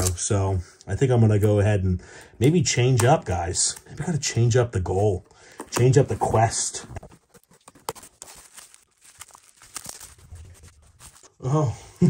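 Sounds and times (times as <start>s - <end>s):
bubble wrap crinkling: 0.0s - 0.3s, 5.0s - 11.4s
cardboard box being opened: 5.8s - 11.3s.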